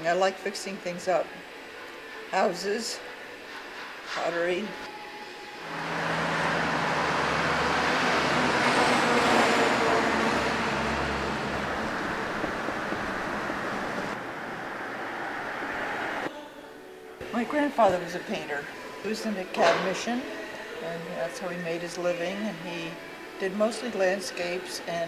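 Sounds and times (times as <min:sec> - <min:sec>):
vehicle engine hum passing: 0:05.5 - 0:16.4.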